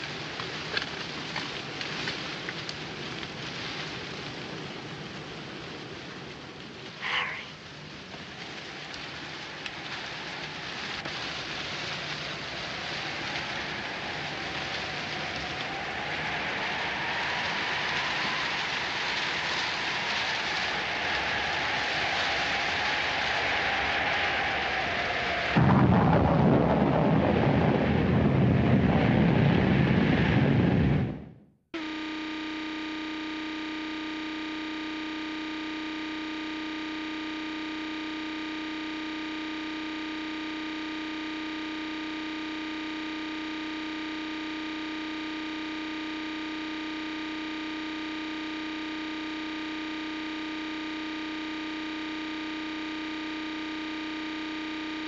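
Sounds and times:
heavy rain: 0:00.0 - 0:31.2
deep rumble: 0:25.6 - 0:35.2
steady electronic buzzing tone: 0:30.6 - 0:55.0.

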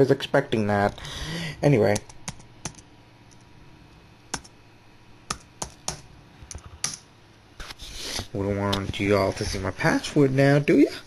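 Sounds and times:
keyboard keys clicking: 0:01.9 - 0:03.4.

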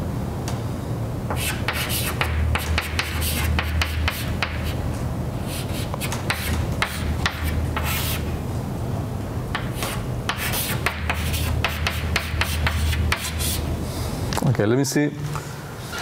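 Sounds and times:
steady low hum: 0:00.0 - 0:16.0
chalk scratching on blackboard: 0:01.3 - 0:04.8, 0:05.4 - 0:08.3, 0:09.6 - 0:13.7.

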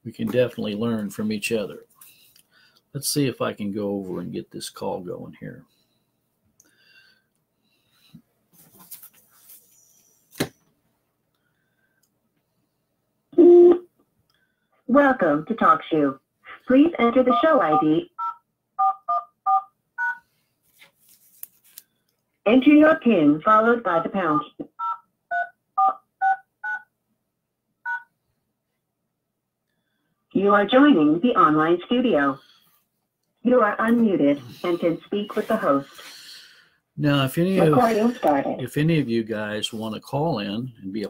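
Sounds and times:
soft rustle: 0:08.5 - 0:10.3, 0:20.3 - 0:22.0
touch-tone keypad beeps: 0:17.7 - 0:20.2, 0:27.9 - 0:28.1.

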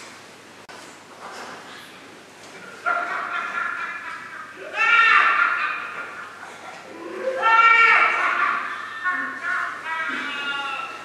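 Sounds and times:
high-pitched whining cry: 0:04.6 - 0:06.3, 0:06.9 - 0:11.0.

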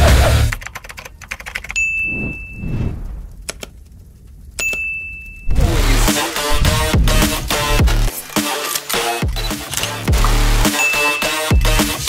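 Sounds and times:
high bell-like ding: 0:01.8 - 0:02.6, 0:04.6 - 0:05.5
clicks: 0:03.3 - 0:05.6.

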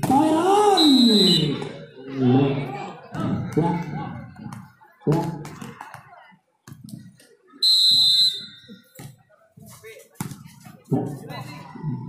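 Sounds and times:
referee's whistle blast: 0:00.8 - 0:01.6, 0:07.6 - 0:08.8.

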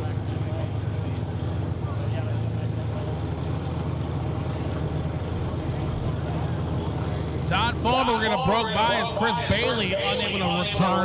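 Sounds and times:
drag racing car engines rumbling: 0:00.0 - 0:11.0.

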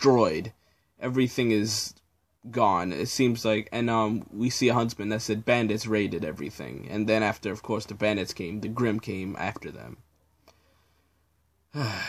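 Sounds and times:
man speaking: 0:00.0 - 0:10.1.

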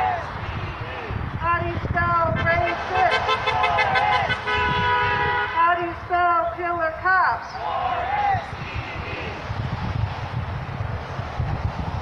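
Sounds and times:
protesters chanting: 0:00.0 - 0:01.2, 0:02.1 - 0:09.5
car horn honking: 0:02.3 - 0:05.8, 0:08.4 - 0:09.4.

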